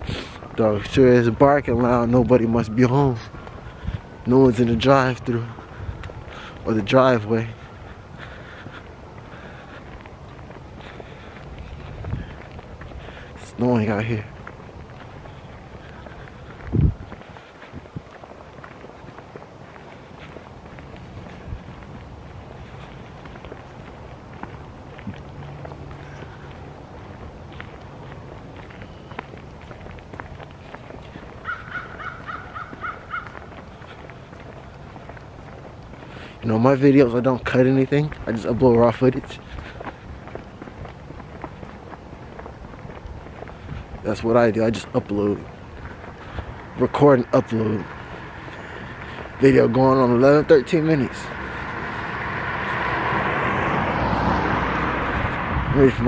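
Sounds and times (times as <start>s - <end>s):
footsteps of person walking: 0.0s - 56.0s
wind rumble on microphone: 0.0s - 56.0s
short animal calls: 31.4s - 33.5s.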